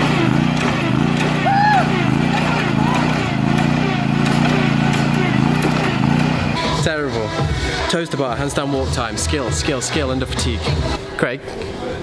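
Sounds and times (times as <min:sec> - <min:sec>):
riding mower engine running: 0:00.0 - 0:07.9.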